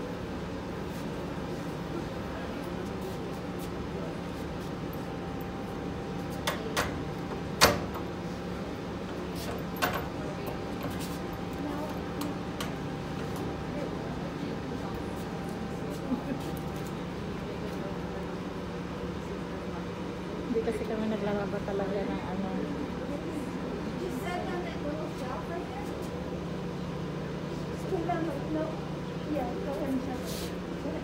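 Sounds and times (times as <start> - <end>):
low hum of laundry machines: 0.0 - 31.0.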